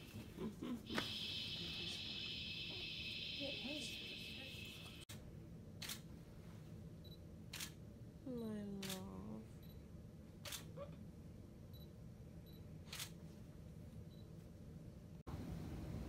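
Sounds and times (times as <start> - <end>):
camera shutter firing: 5.8 - 6.1, 7.5 - 7.8.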